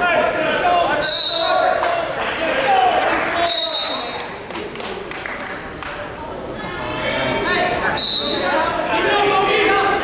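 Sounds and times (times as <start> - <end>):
coaches and spectators shouting: 0.0 - 4.2, 6.3 - 10.0.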